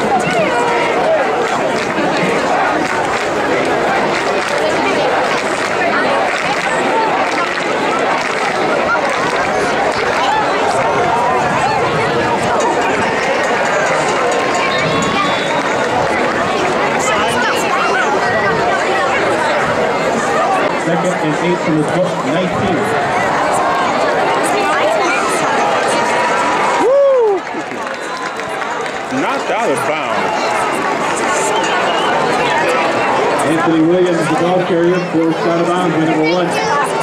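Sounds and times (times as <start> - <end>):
crowd talking and shouting: 0.0 - 37.0.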